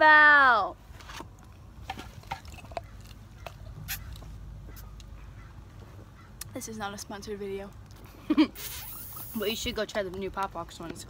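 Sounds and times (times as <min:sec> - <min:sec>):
low rumble: 0:02.5 - 0:06.4.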